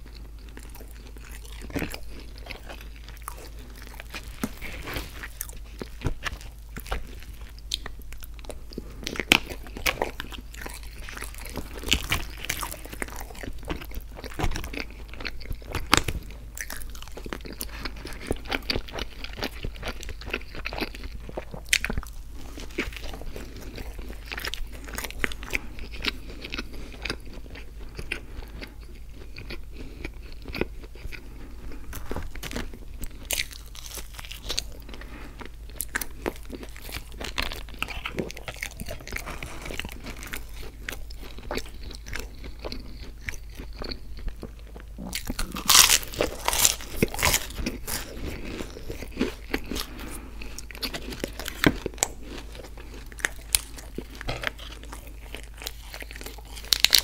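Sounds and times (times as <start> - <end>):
crunchy biting and chewing: 0.0 - 57.0.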